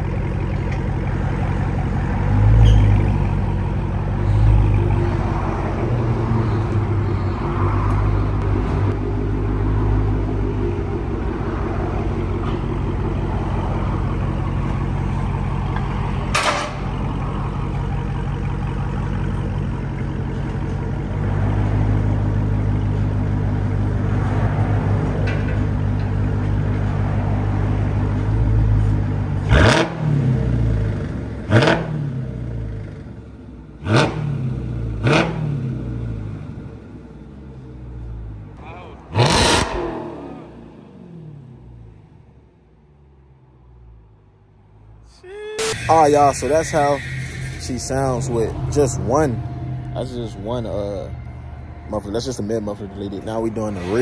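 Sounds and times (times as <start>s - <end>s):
car engine idling loudly: 0.0s - 2.4s, 8.1s - 21.3s
car engine revving hard: 29.4s - 30.6s, 31.5s - 32.2s, 33.8s - 35.8s, 39.1s - 41.6s.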